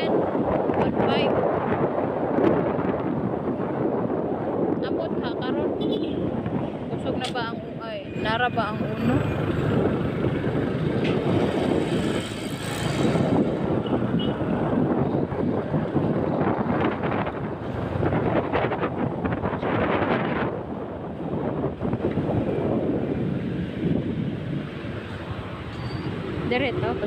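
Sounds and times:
wind buffeting microphone: 0.0 - 27.0.

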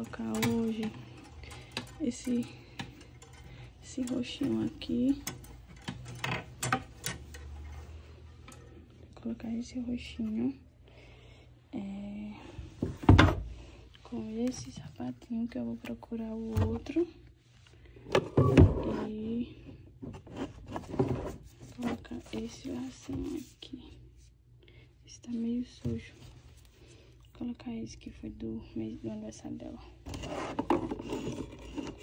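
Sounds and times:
hangers scraping along a rail: 0.0 - 9.0, 30.1 - 32.0.

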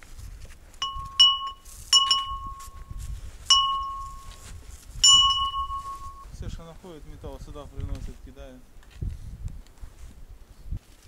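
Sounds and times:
small metal bell struck: 0.8 - 6.3.

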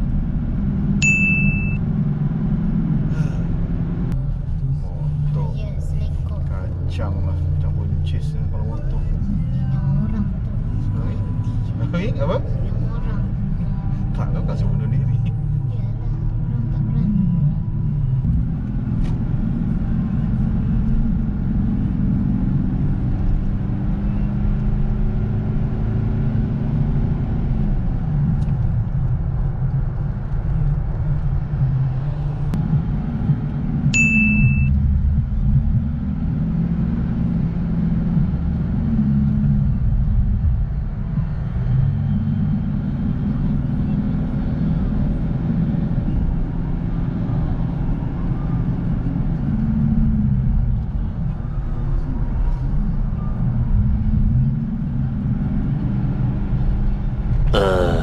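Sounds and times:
car engine and road rumble: 0.0 - 58.0
short high-pitched beep: 1.0 - 1.8, 34.0 - 34.8.

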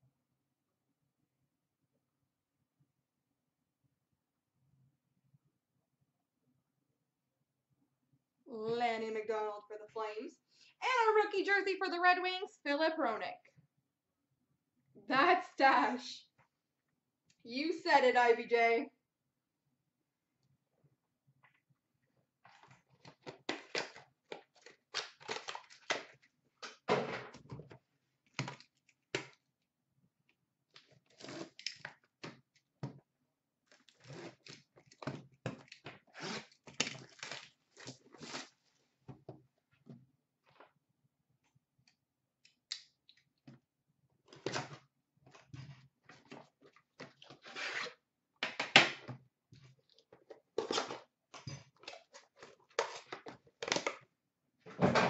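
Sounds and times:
rustling and tearing of wrappers: 22.5 - 26.3, 35.6 - 38.8.

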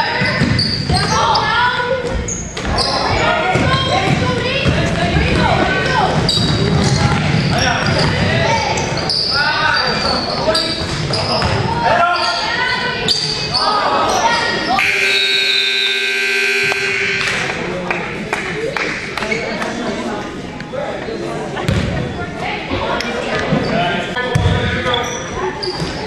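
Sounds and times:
voices shouting: 11.8 - 17.7
scoreboard buzzer: 14.8 - 17.6.

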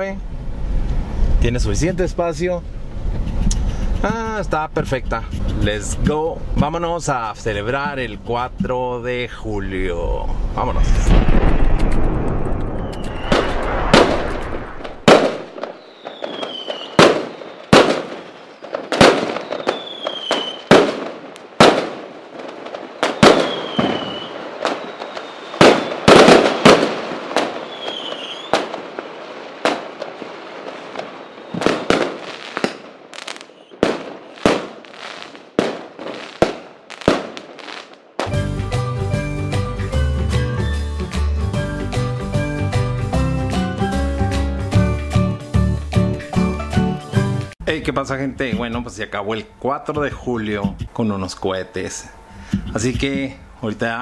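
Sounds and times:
fireworks bangs and cracks: 10.7 - 38.5
falling firework whistles: 11.2 - 21.0, 23.0 - 30.0, 30.6 - 38.4.

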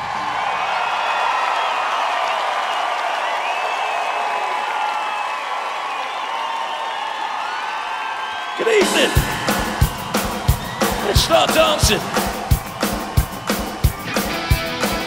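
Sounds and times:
crowd roaring: 0.0 - 15.0.

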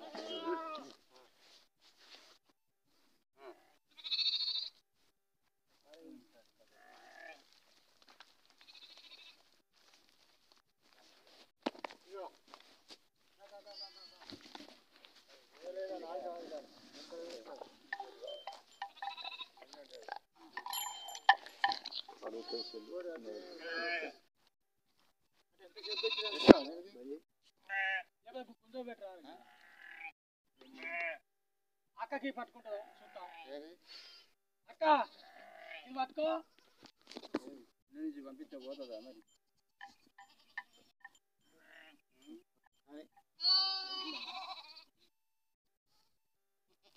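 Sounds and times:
goat bleating: 0.0 - 1.0, 3.4 - 4.8, 6.7 - 7.5, 8.6 - 9.4, 13.6 - 14.3, 17.0 - 20.1, 21.6 - 24.2, 25.7 - 26.8, 27.6 - 28.1, 29.4 - 31.2, 32.7 - 34.4, 35.0 - 36.9, 38.5 - 42.0, 43.4 - 44.9, 46.7 - 46.9.

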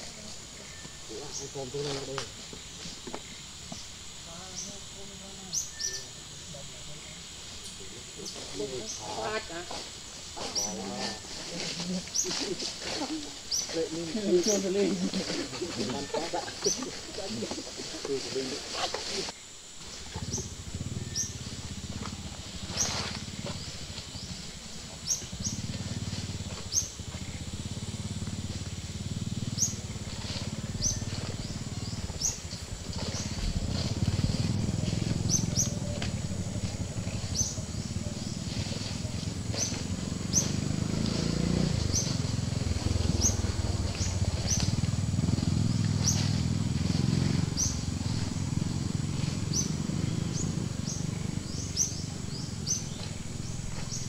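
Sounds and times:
bird chirping: 0.0 - 9.6, 10.4 - 19.2, 19.9 - 21.6, 22.6 - 27.7, 28.4 - 54.0.

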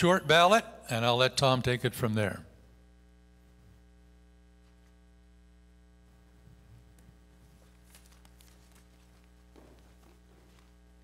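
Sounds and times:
low electrical hum: 0.0 - 11.0
microphone handling clicks and rustles: 6.4 - 11.0.

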